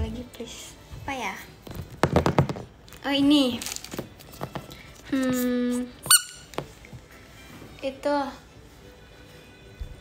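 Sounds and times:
rubber duck toy squeak: 6.0s - 6.5s.

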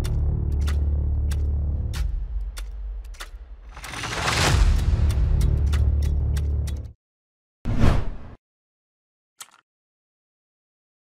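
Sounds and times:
deep bass drone: 0.0s - 3.6s.

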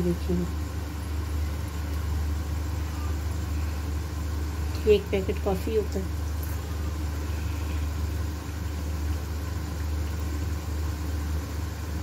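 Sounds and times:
gas burner hissing: 0.0s - 12.0s
steady low hum: 0.0s - 12.0s.

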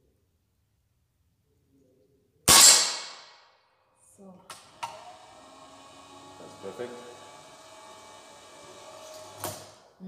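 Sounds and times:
air rifle shot: 2.5s - 3.5s.

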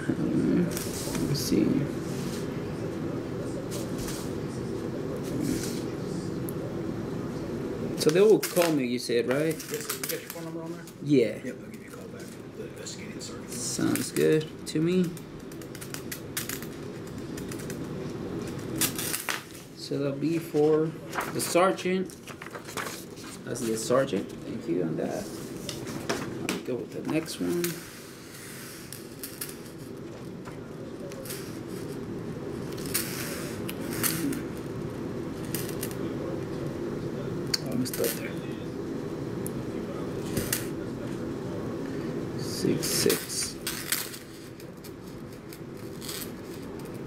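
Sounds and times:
faint room noise: 0.0s - 47.0s.

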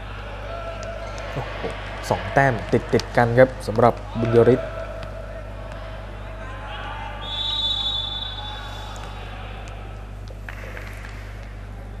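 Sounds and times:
sports hall hum: 0.0s - 12.0s
referee's whistle: 7.2s - 9.0s.

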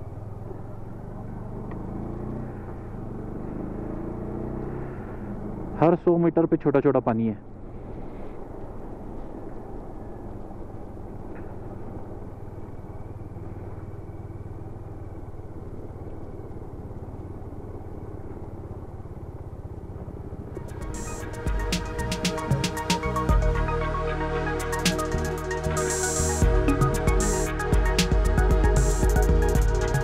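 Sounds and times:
motorcycle engine running: 0.0s - 30.0s
road and wind noise: 0.0s - 30.0s
electronic music: 20.6s - 30.0s.

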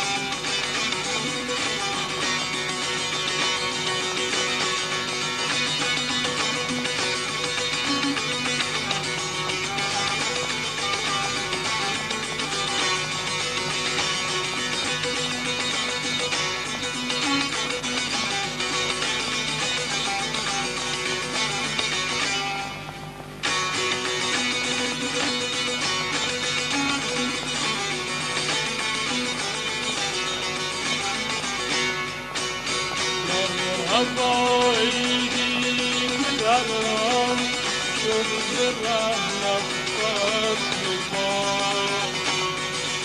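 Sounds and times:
long-necked lute strumming: 0.0s - 43.0s.

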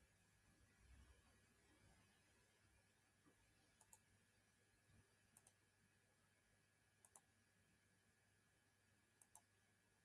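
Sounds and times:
computer mouse clicks: 3.8s - 4.1s, 5.3s - 5.6s, 7.0s - 7.3s, 9.2s - 9.5s.

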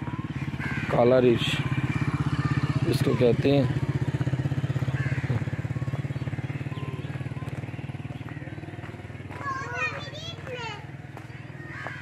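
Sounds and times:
motorcycle engine running: 0.0s - 12.0s
faint children's voices: 9.0s - 11.3s.

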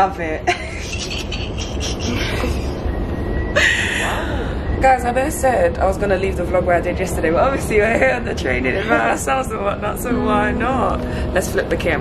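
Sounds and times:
train rumble inside carriage: 0.0s - 12.0s
thin high tone: 10.0s - 12.0s.

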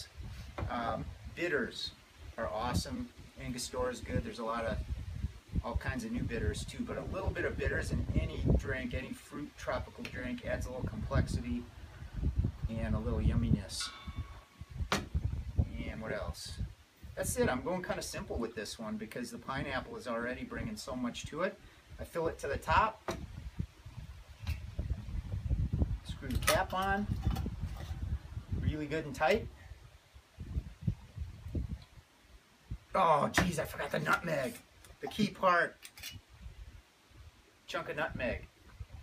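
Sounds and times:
sharp click: 26.3s - 27.5s.

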